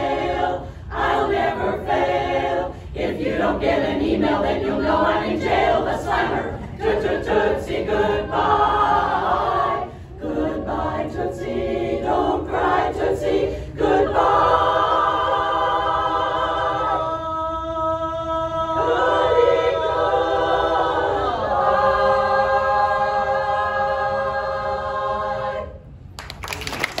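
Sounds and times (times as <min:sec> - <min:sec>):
women's chorus singing a cappella: 0:00.0 - 0:26.0
audience applause: 0:26.2 - 0:27.0.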